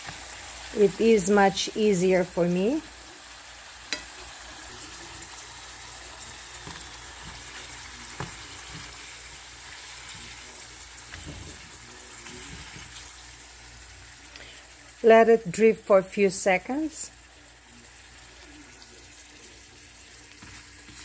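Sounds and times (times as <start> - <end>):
slices sizzling in oil: 0.0 - 21.0.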